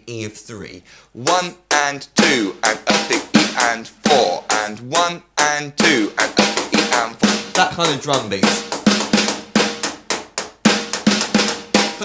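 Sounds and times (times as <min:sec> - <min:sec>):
electronic drum kit rock groove: 0:02.2 - 0:05.0, 0:05.8 - 0:12.0.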